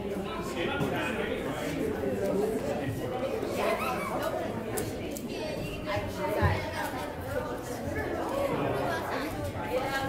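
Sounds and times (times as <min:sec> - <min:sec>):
many people chatting: 0:00.0 - 0:10.0.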